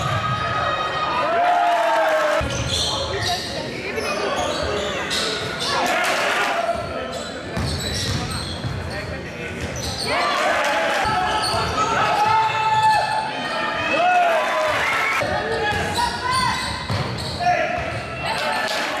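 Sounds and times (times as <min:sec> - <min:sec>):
sneakers squeaking on floor: 0:02.4 - 0:05.9, 0:06.7 - 0:10.2, 0:11.1 - 0:12.0, 0:15.2 - 0:18.7
basketball bouncing: 0:07.6 - 0:08.8, 0:16.9 - 0:17.2.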